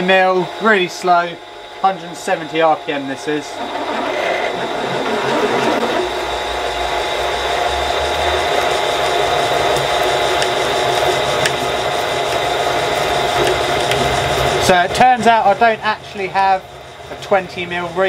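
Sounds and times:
drill boring into metal: 2.5 - 6.6.

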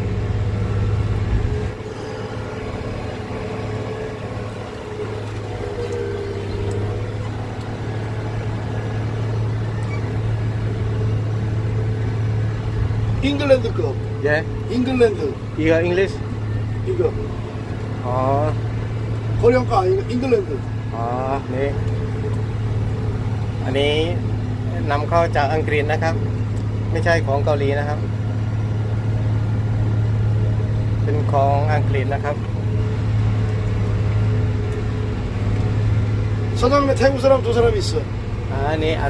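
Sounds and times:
tractor engine droning: 0.0 - 39.0.

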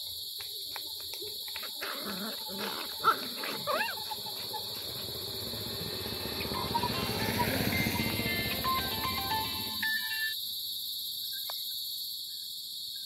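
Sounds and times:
puppies play-fighting: 1.6 - 5.3
puppy yelps: 1.8 - 4.9.

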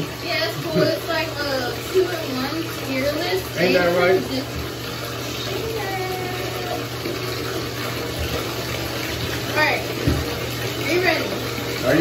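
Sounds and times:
tap running into bathtub: 0.0 - 12.0.

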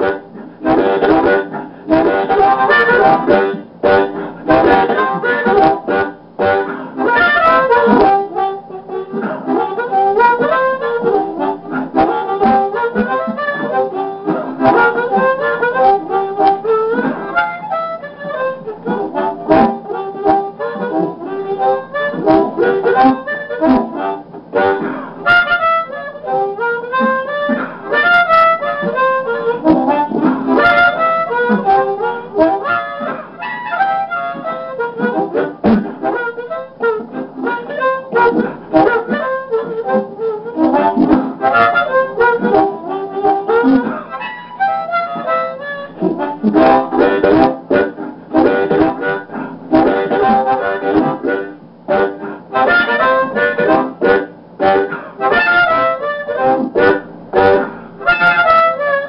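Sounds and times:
blues harmonica: 0.0 - 59.0.

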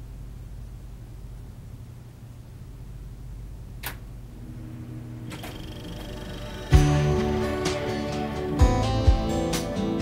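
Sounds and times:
tape recorder low hum: 0.0 - 9.6
tape recorder mechanical click: 3.8 - 4.1.

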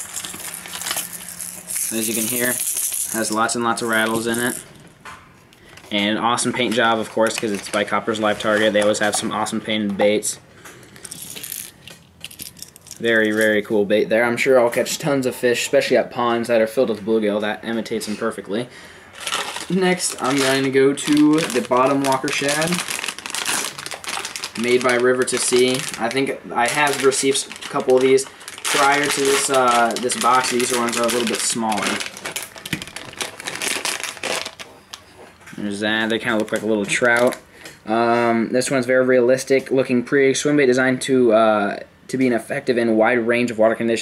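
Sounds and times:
plastic package crinkling: 0.0 - 4.7, 5.6 - 9.6, 11.0 - 13.7, 19.1 - 37.5.

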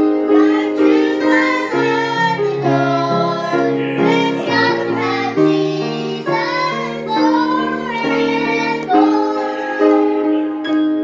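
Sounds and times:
girls singing: 0.0 - 10.6
grand piano chords: 0.0 - 11.0.

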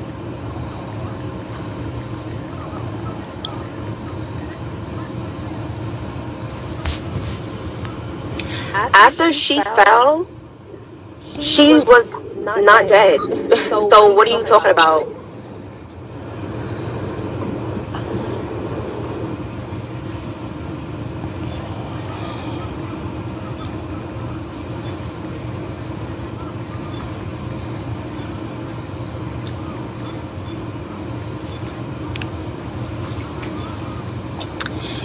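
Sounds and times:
steady low rumble: 0.3 - 30.0
faint clicks: 31.6 - 32.4.

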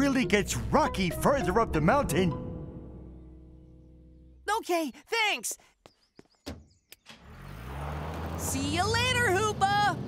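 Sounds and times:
cartoon truck engine running: 7.1 - 10.0.

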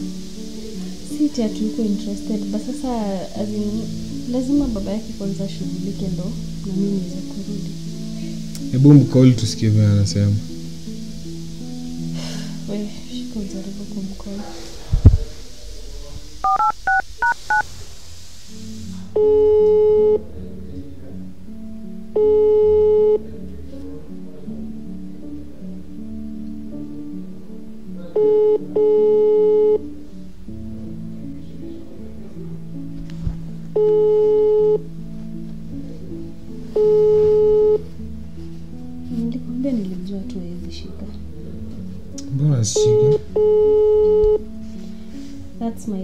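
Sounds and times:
soft background music: 0.0 - 46.0
dual-tone keypad beeps: 16.4 - 17.6, 28.2 - 29.8, 43.0 - 44.4
phone ringing tone: 16.4 - 17.6, 19.2 - 20.2, 22.2 - 23.2, 28.2 - 29.8, 33.8 - 34.8, 36.8 - 37.9, 42.8 - 44.4.

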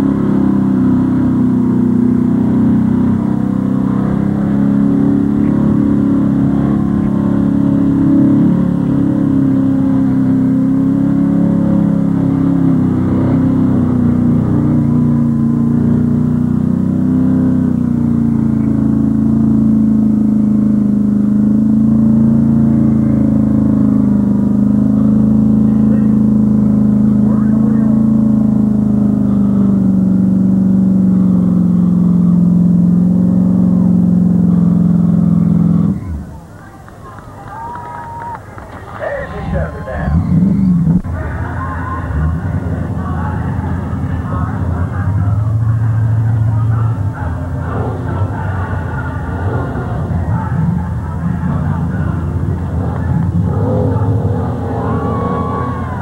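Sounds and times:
truck engine revving high: 0.0 - 56.0
wheels churning in mud: 33.0 - 56.0.

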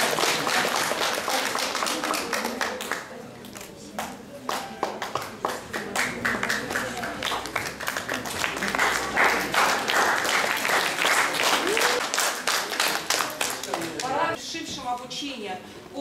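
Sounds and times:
audience applauding: 0.0 - 3.1, 4.5 - 14.2.

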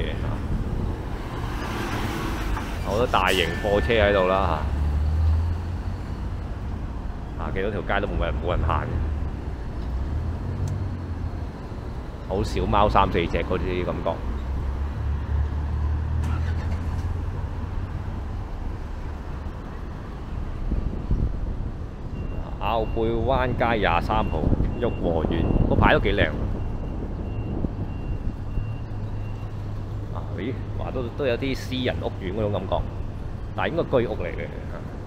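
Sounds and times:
vehicle engine rumble: 0.0 - 35.0
faint high beep: 22.1 - 23.1.

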